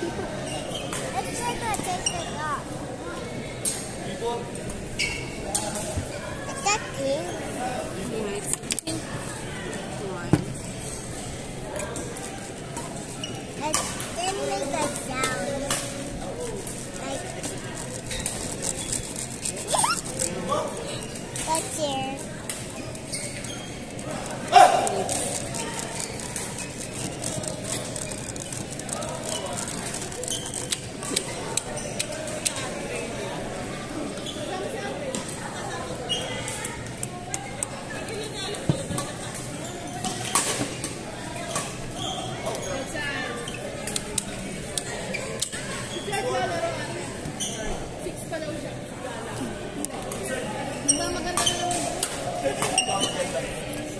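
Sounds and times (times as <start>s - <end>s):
children's voices and chatter: 0.0s - 53.9s.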